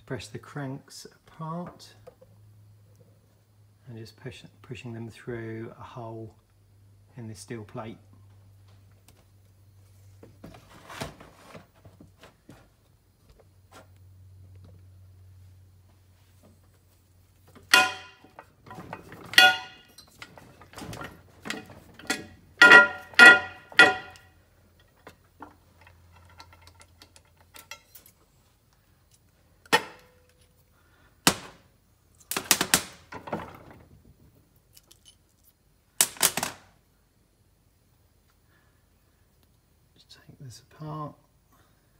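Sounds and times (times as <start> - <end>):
sharp metallic knocks: 17.6 - 24.3.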